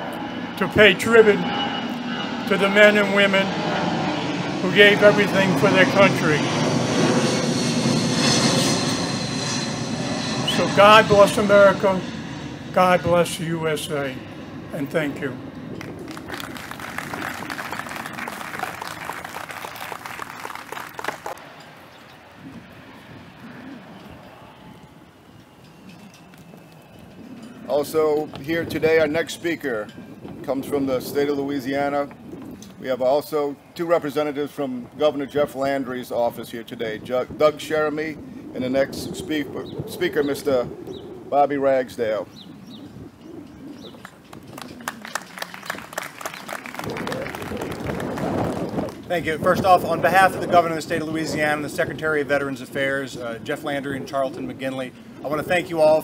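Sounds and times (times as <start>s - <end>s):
audience applauding: 15.8s - 21.4s, 44.3s - 49.0s.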